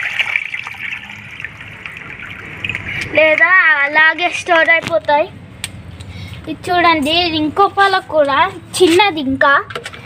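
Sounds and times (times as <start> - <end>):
water trickling and dripping: 0.0 - 4.6.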